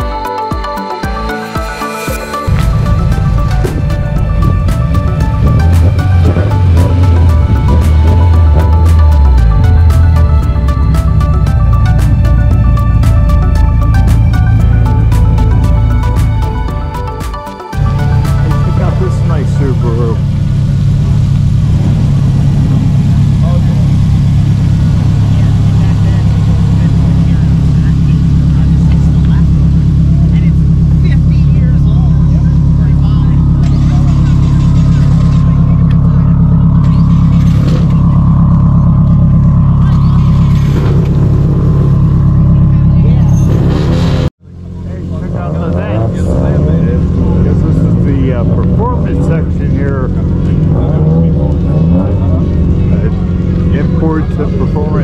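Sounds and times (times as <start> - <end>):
voices: 0.0 - 55.0
deep engine exhaust drone: 1.5 - 55.0
faint engine hum: 2.3 - 55.0.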